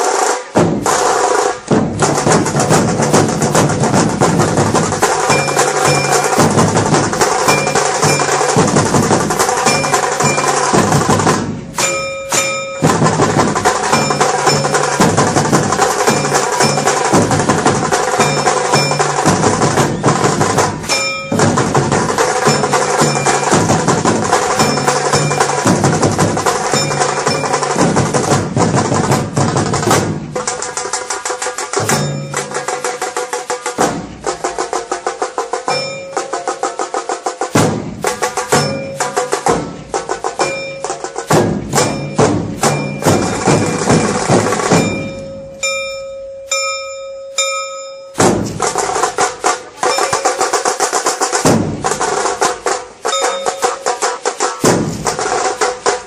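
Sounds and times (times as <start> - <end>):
procession drums playing: 0.0 - 47.5, 48.1 - 56.0
ringing metallic percussion: 0.0 - 56.0.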